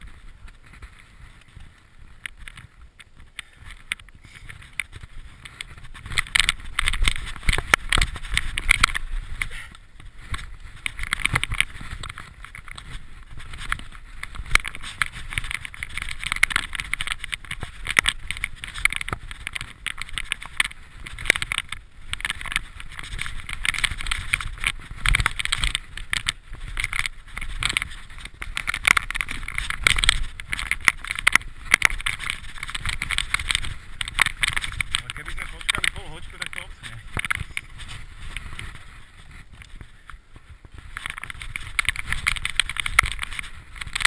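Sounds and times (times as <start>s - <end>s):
bike knocking and rattling on rocks: 0.0s - 44.0s
bike tyres rumbling over dirt: 0.0s - 44.0s.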